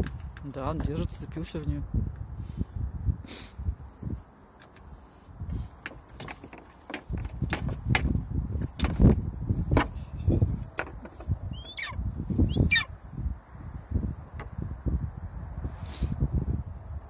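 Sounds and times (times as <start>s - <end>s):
talons knocking and scraping on car: 5.8s - 10.0s, 10.7s - 11.3s
eagle high thin falling call: 11.5s - 12.9s.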